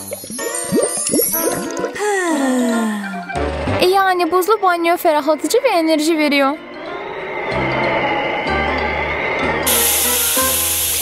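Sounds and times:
loud steam hiss: 9.7 - 11.0.

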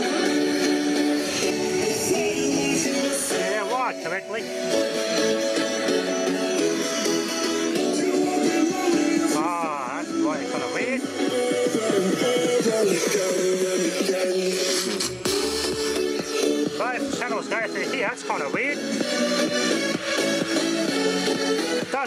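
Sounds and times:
electronic music from speakers: 0.0 - 22.0.

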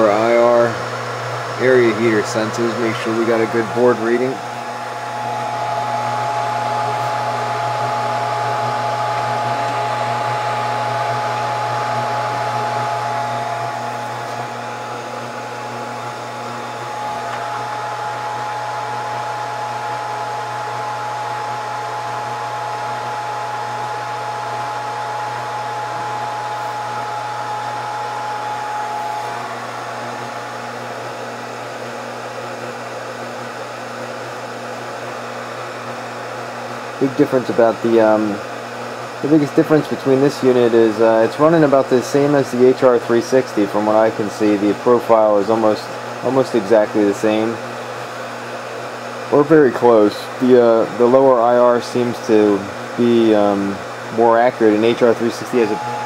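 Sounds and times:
hot-air blower hum: 0.0 - 56.0
steady whine: 0.0 - 56.0.

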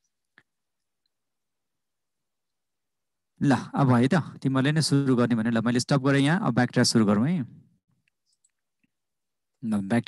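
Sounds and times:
man speaking: 3.4 - 7.6, 9.6 - 10.0.

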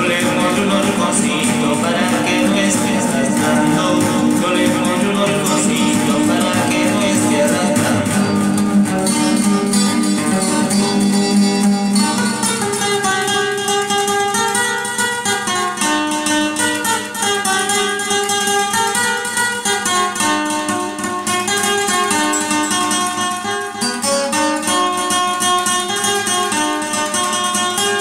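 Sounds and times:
acoustic guitar playing: 0.0 - 28.0.

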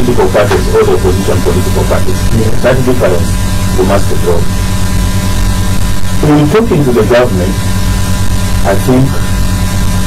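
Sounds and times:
speech: 0.0 - 4.5, 6.2 - 7.6, 8.6 - 9.3
electrical mains hum and buzz: 0.0 - 10.0.

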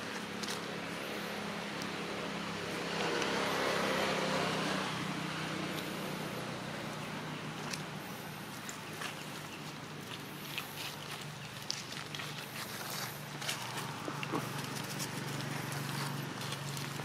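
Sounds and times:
low engine hum: 0.0 - 17.0
motor vehicle passing: 0.0 - 17.0
dry leaves crackling: 6.9 - 17.0.

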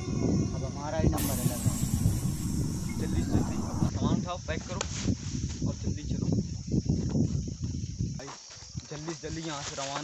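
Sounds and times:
steady high hiss: 1.2 - 3.9
low rumble: 1.2 - 4.0.

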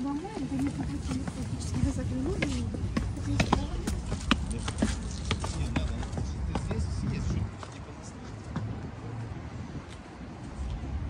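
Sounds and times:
footsteps on stone steps: 0.0 - 8.9
people talking: 0.0 - 9.2
low wind rumble: 0.0 - 11.0.

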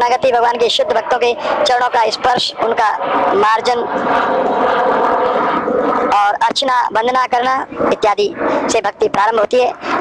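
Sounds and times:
steady pitched drone: 0.0 - 10.0.

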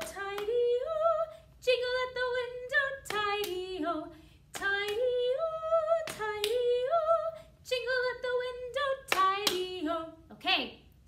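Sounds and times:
woman speaking: 10.3 - 10.9.

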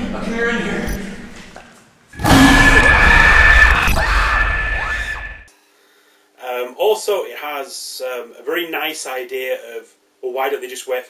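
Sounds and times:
harsh shriek with high tone: 2.2 - 5.5.

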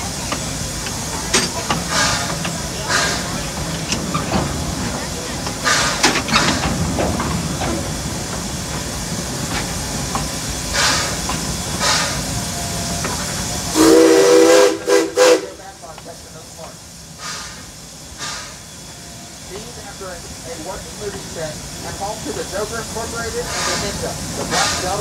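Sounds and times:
steam locomotive hissing: 0.0 - 25.0
steam whistle chord: 13.8 - 15.4.

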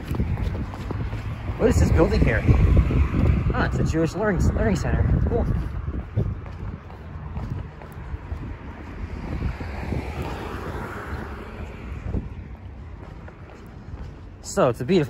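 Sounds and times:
road traffic noise: 0.0 - 15.0
wind buffeting microphone: 0.0 - 15.0.

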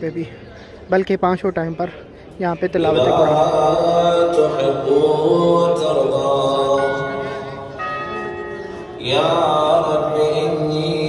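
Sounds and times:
man chanting over loudspeakers: 2.8 - 7.7, 9.0 - 11.0
ringing tones: 6.7 - 10.4.

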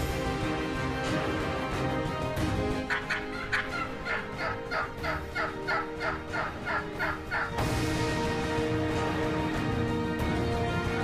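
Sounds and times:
wild turkey calling: 2.8 - 7.6.

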